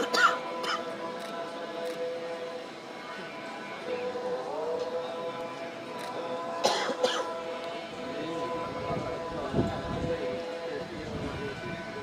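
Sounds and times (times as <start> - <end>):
person coughing near microphone: 0.0 - 0.8, 6.6 - 7.3
faint crowd voices: 0.0 - 12.0.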